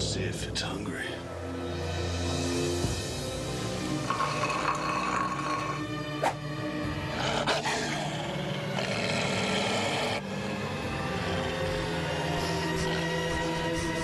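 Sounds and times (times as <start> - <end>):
tense background music: 0.0 - 14.0
beast growling: 3.8 - 14.0.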